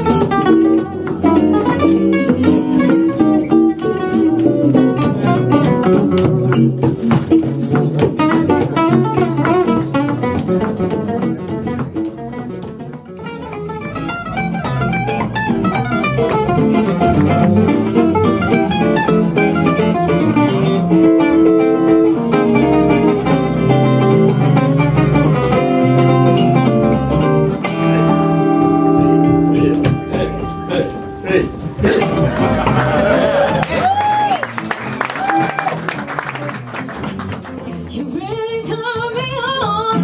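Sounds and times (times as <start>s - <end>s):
acoustic guitar: 0.0s - 40.0s
electric guitar: 0.0s - 40.0s
upright double bass: 0.0s - 40.0s.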